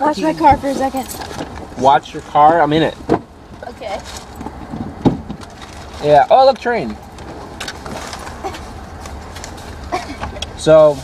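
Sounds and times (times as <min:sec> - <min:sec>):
faint clicks and rustles: 0:00.4 - 0:10.6.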